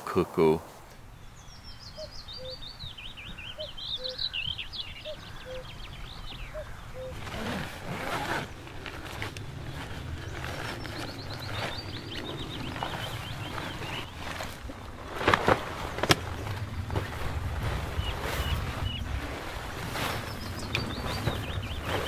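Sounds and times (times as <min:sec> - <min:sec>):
small bird twittering: 0:01.1 - 0:07.6, 0:20.2 - 0:22.0
cuckoo calling: 0:01.1 - 0:14.6, 0:17.7 - 0:22.0
fabric rustling: 0:07.0 - 0:22.0.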